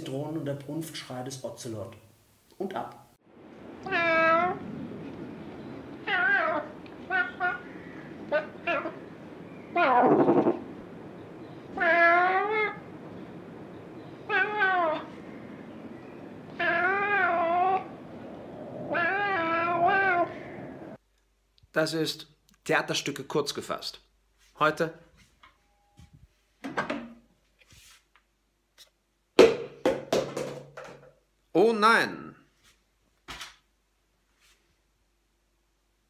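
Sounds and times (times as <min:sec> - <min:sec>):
cat yowling: 0:03.8 - 0:04.8, 0:05.7 - 0:10.7, 0:11.6 - 0:13.0, 0:14.2 - 0:21.0.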